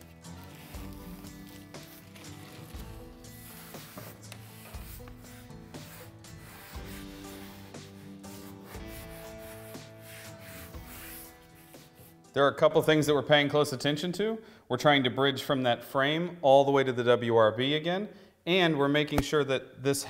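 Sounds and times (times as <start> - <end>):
hands rubbing membrane on wall: 0.0 - 12.3
background music: 0.0 - 16.4.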